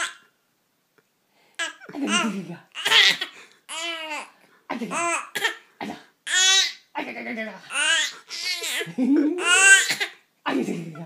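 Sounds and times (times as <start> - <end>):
baby laughing: 1.6 - 5.6, 6.3 - 6.8, 7.7 - 11.0.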